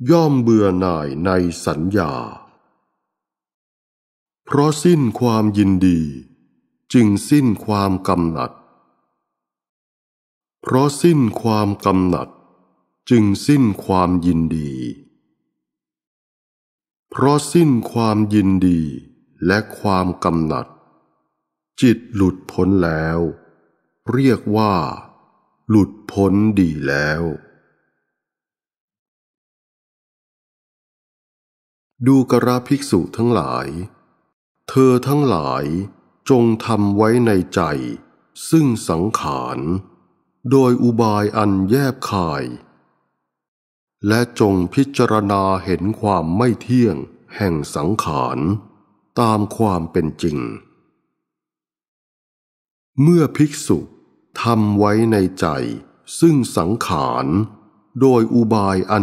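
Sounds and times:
man reading aloud: 0:00.0 - 0:02.5, 0:04.5 - 0:06.2, 0:06.9 - 0:08.6, 0:10.6 - 0:12.3, 0:13.1 - 0:15.0, 0:17.1 - 0:20.7, 0:21.8 - 0:23.4, 0:24.1 - 0:25.1, 0:25.7 - 0:27.4, 0:32.0 - 0:33.9, 0:34.7 - 0:39.8, 0:40.5 - 0:42.6, 0:44.0 - 0:48.6, 0:49.2 - 0:50.7, 0:53.0 - 0:59.0
person reciting scripture: 0:00.0 - 0:02.6, 0:04.5 - 0:06.3, 0:06.9 - 0:08.6, 0:10.6 - 0:12.3, 0:13.1 - 0:15.1, 0:17.1 - 0:20.7, 0:21.8 - 0:23.4, 0:24.1 - 0:27.5, 0:32.0 - 0:34.0, 0:34.7 - 0:39.9, 0:40.5 - 0:42.7, 0:44.0 - 0:48.6, 0:49.2 - 0:50.7, 0:53.0 - 0:59.0.

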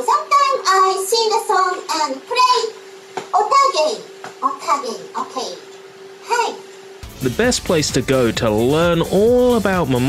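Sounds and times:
woman speaking in high voice: 0:00.0 - 0:06.7
steady hum: 0:00.0 - 0:10.0.

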